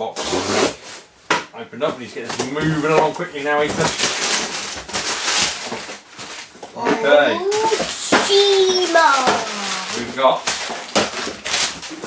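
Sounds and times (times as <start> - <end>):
packing paper crinkling: 2.4 - 6.7, 7.4 - 12.0.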